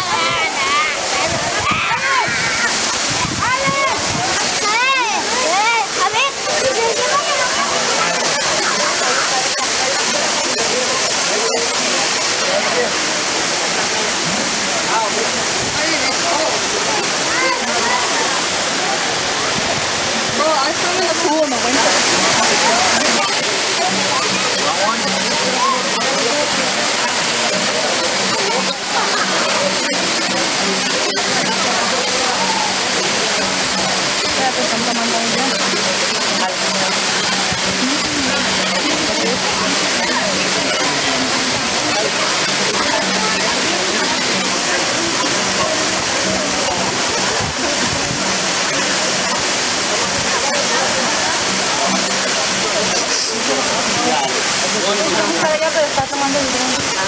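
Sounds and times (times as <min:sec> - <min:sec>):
people chattering: 0:00.0 - 0:57.0
waterfall rushing into pool: 0:00.0 - 0:57.0.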